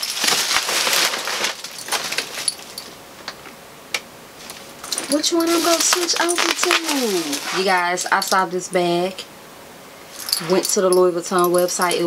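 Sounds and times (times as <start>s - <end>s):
bag rustling: 0.0s - 3.0s, 4.4s - 8.4s, 10.1s - 12.0s.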